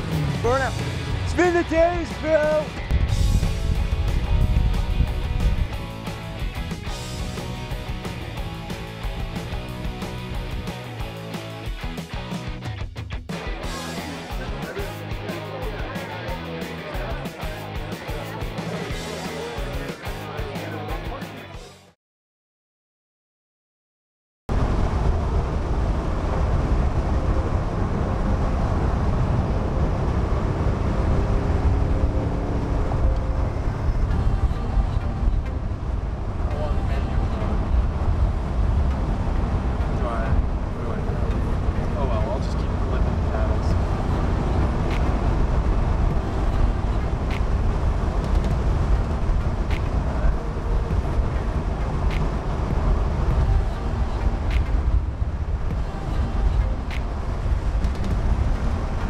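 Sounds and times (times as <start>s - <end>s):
in-car engine tyre and wind rumble: 0.0s - 12.1s, 24.5s - 59.0s.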